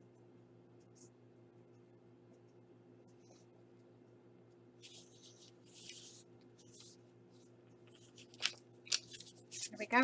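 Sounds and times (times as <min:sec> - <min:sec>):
low steady hum: 0:00.0 - 0:10.0
paper card rustling: 0:04.8 - 0:10.0.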